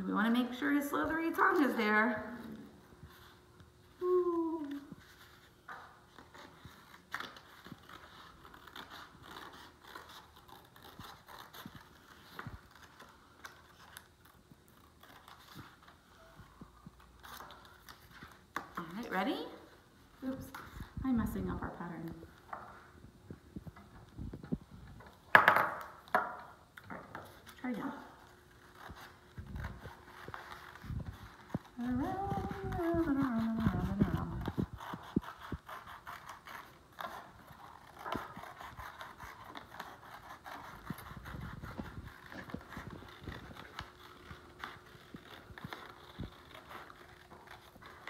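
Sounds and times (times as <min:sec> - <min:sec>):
woman's wavering vocal sound: 0:04.0 - 0:05.0, 0:31.8 - 0:34.4
paper clicks and crinkles: 0:04.6 - 0:19.1, 0:28.2 - 0:48.0.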